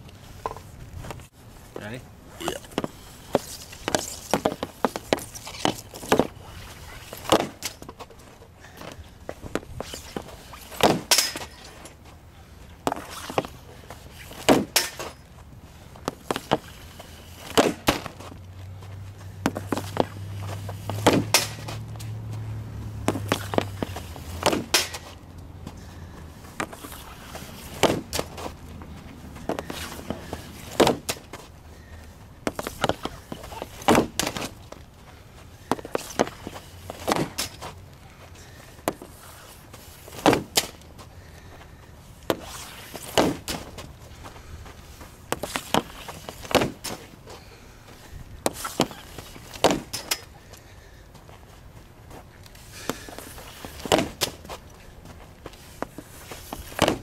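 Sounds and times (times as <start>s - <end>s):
hockey stick hitting puck: 2.7s - 6.4s, 7.1s - 7.9s, 9.5s - 11.8s, 14.3s - 15.2s, 16.1s - 16.8s, 17.4s - 18.3s, 19.4s - 22.1s, 23.0s - 25.2s, 26.5s - 28.5s, 29.4s - 31.4s, 32.5s - 34.6s, 35.6s - 37.7s, 40.1s - 40.8s, 42.3s - 43.9s, 45.3s - 47.1s, 48.4s - 50.3s, 52.8s - 54.6s, 55.8s - 57.0s.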